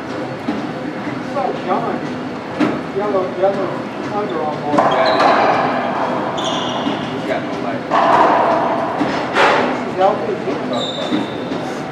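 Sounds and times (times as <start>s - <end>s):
sneaker squeaks on floor: 4.2s - 7.4s, 10.7s - 11.6s
racquetball smacks echoing: 4.7s - 7.2s, 7.9s - 9.9s.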